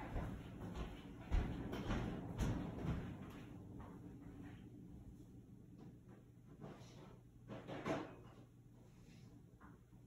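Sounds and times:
thuds and knocks of person moving: 0:00.0 - 0:04.0.

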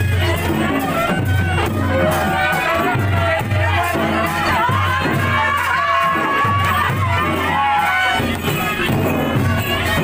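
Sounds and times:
barrel drums beating: 0:00.0 - 0:10.0
crowd cheering and shouting: 0:00.0 - 0:10.0.

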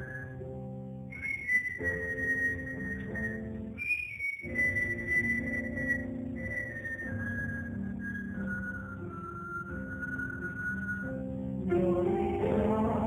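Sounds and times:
high whistle-like melody: 0:00.0 - 0:12.4.

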